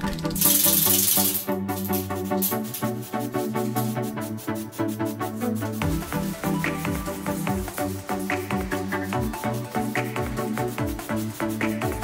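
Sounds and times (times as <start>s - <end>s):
background music: 0.0s - 12.0s
spray can ball rattling: 0.0s - 12.0s
aerosol spray hiss: 0.4s - 12.0s.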